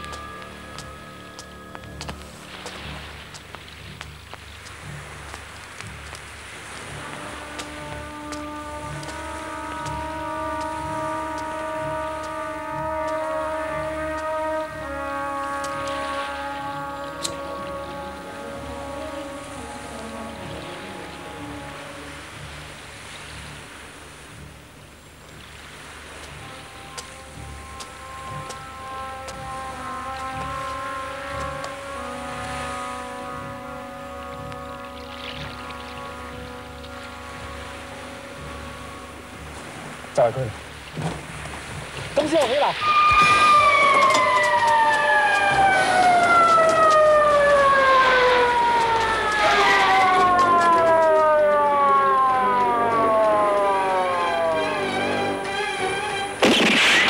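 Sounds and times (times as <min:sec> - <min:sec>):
held synthesizer chords: 0:00.0 - 0:25.3, 0:26.0 - 0:41.8, 0:42.7 - 0:56.6
steady low rumble: 0:00.0 - 0:42.4.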